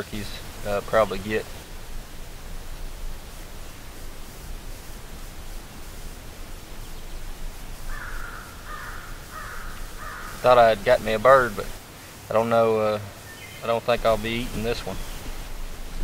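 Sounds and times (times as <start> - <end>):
low outdoor background hum: 0.0 - 16.0
bird calling harshly: 1.4 - 12.2.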